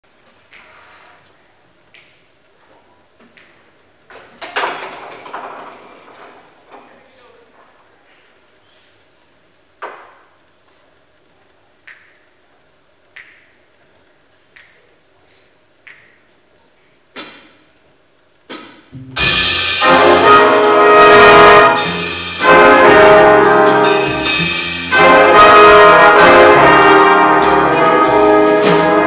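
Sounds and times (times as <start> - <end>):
sharp finger snaps: 1.9 - 2.2, 11.8 - 12.3, 13.1 - 13.6, 14.5 - 15.0, 15.8 - 16.3, 17.1 - 17.6
jazz band playing: 18.9 - 29.0.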